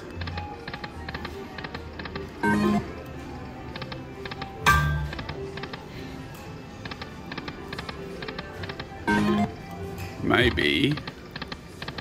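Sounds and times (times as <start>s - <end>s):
slot machine chime: 2.4s - 3.1s, 9.0s - 9.6s.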